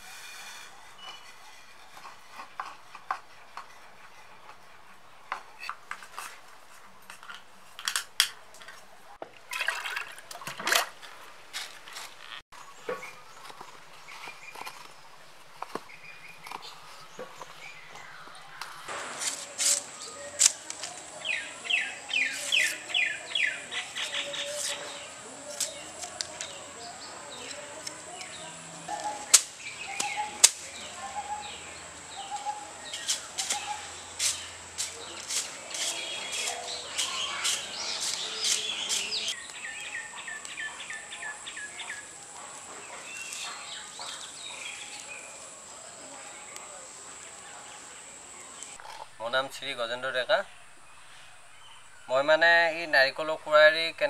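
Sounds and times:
broom sweeping earth: 0.0 - 4.5, 16.6 - 39.4
bird chirping: 12.6 - 54.0
blade scraping leaf midribs: 13.0 - 28.4, 32.8 - 39.4.

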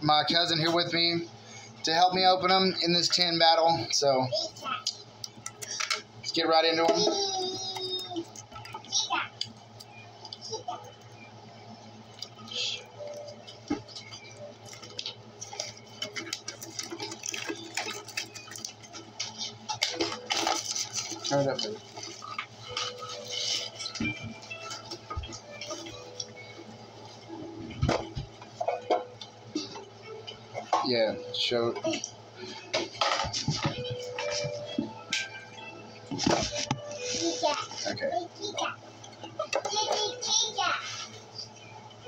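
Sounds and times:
plastic shrink wrap crinkling: 13.0 - 26.3.

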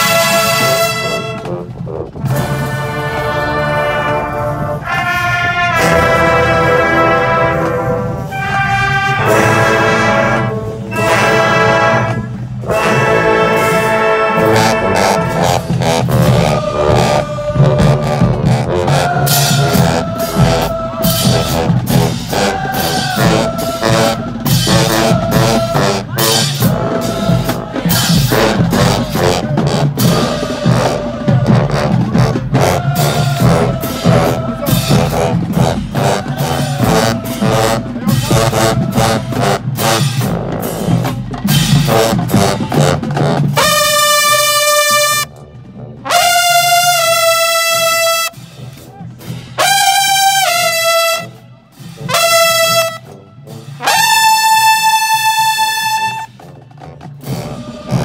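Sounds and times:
marching band brass: 0.0 - 58.0.

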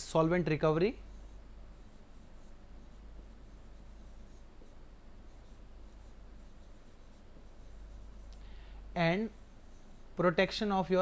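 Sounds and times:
steady low hum: 0.0 - 11.0
pen writing on board: 1.1 - 8.3.

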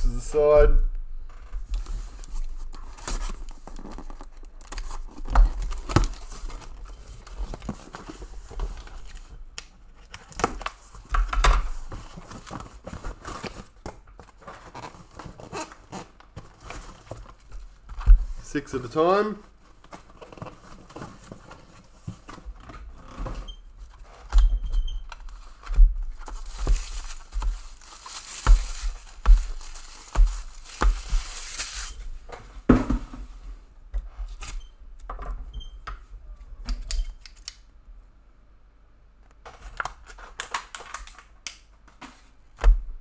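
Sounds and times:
plastic wrapping crinkling and tearing: 1.7 - 9.3, 25.2 - 32.1, 39.8 - 41.4.

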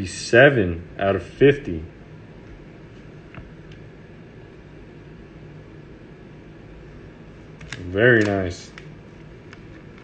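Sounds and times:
room hum and hiss: 0.0 - 10.0.

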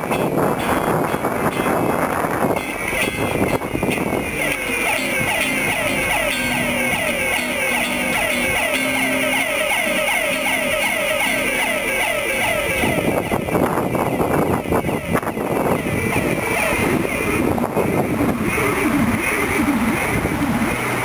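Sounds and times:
low guitar note: 0.6 - 14.8.

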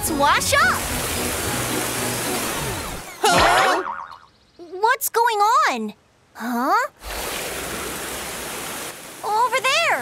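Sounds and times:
water jet gushing: 0.0 - 4.0, 7.0 - 10.0.

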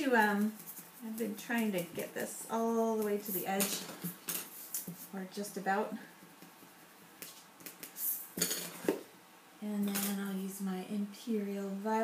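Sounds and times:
coloured pencils clinking: 2.9 - 5.0, 7.2 - 9.0.

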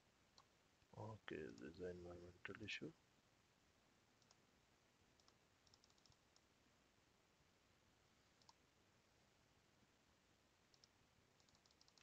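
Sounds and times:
faint computer clicks: 4.2 - 4.4, 5.2 - 6.5, 8.4 - 8.6, 10.7 - 12.0.

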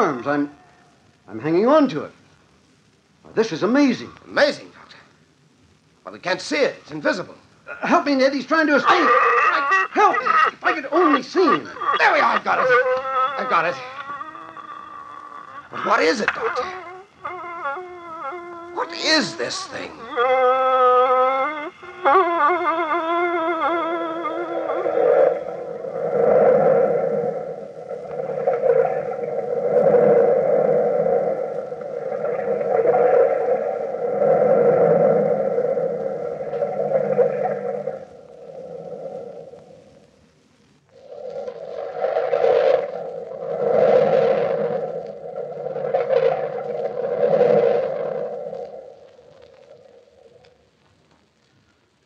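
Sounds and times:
beast moaning and sobbing: 11.6 - 25.7.

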